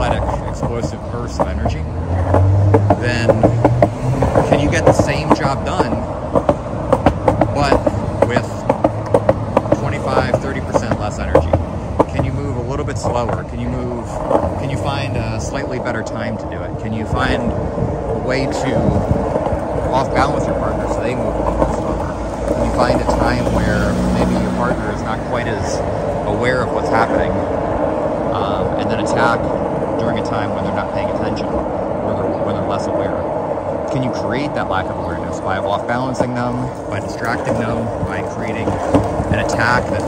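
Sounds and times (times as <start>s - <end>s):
person talking: 0.0s - 1.9s, 2.9s - 3.5s, 4.4s - 6.0s, 7.4s - 8.7s, 9.7s - 19.1s, 19.9s - 27.4s, 28.3s - 33.3s, 33.9s - 40.0s
skateboard wheels rolling on asphalt: 0.0s - 40.0s.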